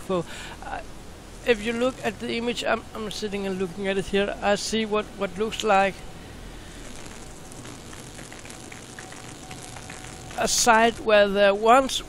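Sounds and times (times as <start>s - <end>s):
microphone hiss and crackle: 0.0s - 12.0s
faint thin steady tone: 5.4s - 11.2s.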